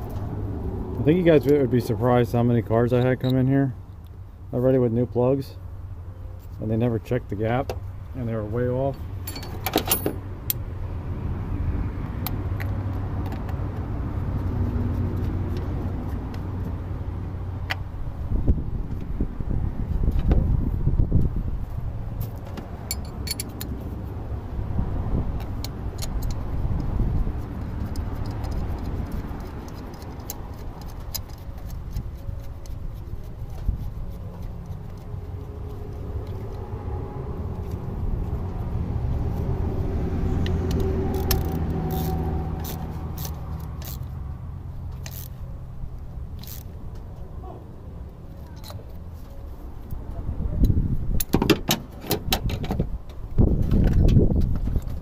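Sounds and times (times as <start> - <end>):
low vehicle rumble: 0.0 - 4.6, 7.5 - 55.0.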